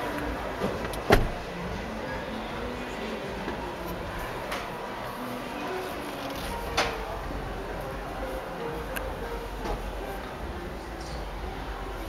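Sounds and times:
exhibition hall background noise: 0.0 - 12.0.

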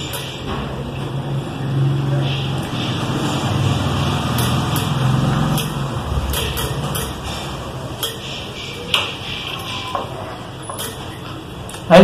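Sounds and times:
vehicle engine passing by: 1.0 - 7.9.

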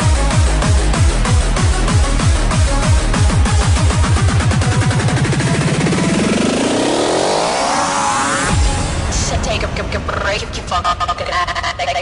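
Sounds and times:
synth riser sweeping upward: 3.9 - 9.2.

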